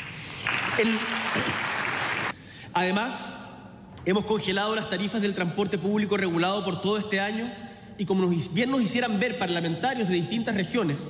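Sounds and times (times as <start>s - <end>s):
audience applauding: 0.0s - 2.4s
man speaking: 0.8s - 1.6s, 2.7s - 11.0s.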